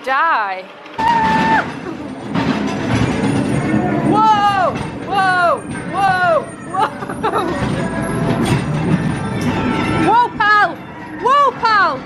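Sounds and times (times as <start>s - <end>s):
ride car rumbling along track: 0.0s - 12.0s
falling wail: 1.0s - 1.9s.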